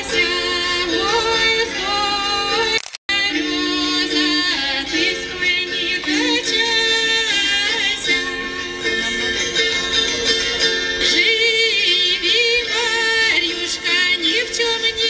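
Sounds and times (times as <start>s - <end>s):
woman singing folk song: 0.0s - 10.1s, 11.0s - 15.0s
plucked psaltery strings: 0.0s - 15.0s.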